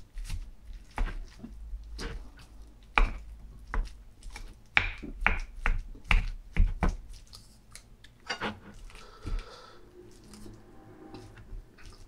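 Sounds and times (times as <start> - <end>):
wooden spoon scraping metal bowl: 8.3 - 8.8, 10.0 - 12.0.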